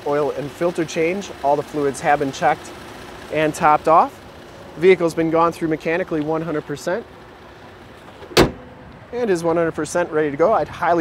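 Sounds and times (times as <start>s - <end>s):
car hood slamming: 8.0s - 8.8s.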